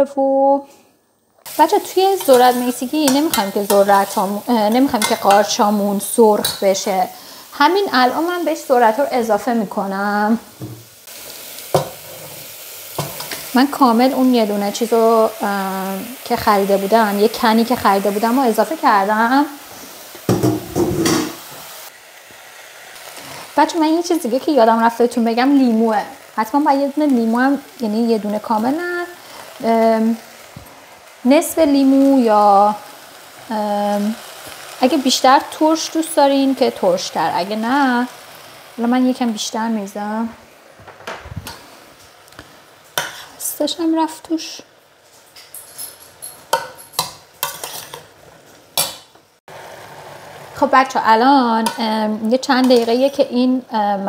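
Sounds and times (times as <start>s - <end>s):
butter sizzling: 1.4s - 54.0s
metal spoon scraping a pot: 45.5s - 48.1s.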